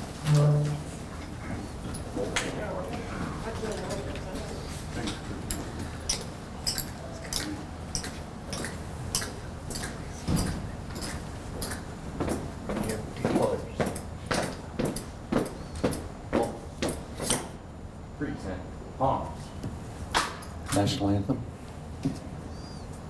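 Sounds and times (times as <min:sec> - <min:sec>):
marching footsteps with heel clicks: 0:07.9 - 0:17.1.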